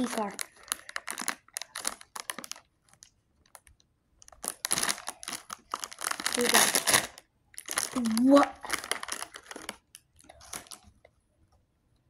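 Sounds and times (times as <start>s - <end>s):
plastic wrapper crinkling: 0.0s - 11.1s.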